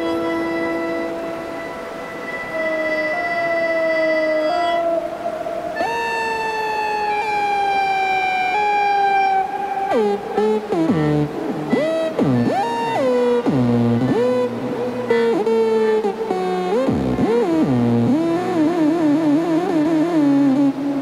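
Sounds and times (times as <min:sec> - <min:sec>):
electronic music with reedy tones: 0:00.0 - 0:04.8, 0:05.7 - 0:21.0.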